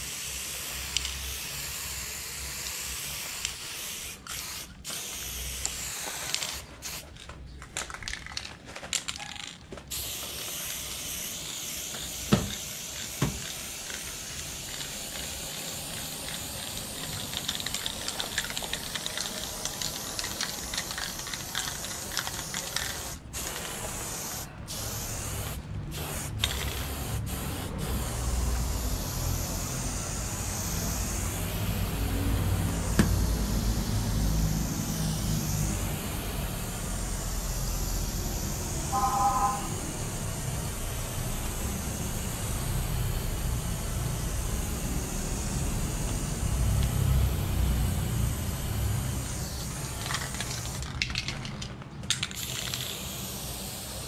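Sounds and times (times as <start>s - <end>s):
spray paint can hissing: 0.0s - 7.2s, 9.0s - 54.0s.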